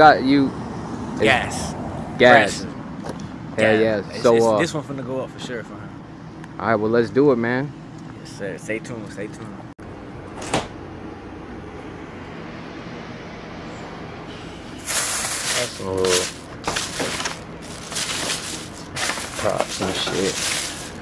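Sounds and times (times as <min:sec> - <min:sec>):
plastic bag rustling: 0:14.8 - 0:21.0.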